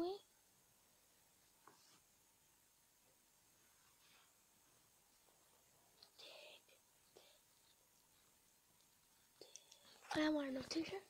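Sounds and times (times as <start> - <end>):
faint whisper: 6.0 - 7.7
faint clicks: 8.8 - 10.0.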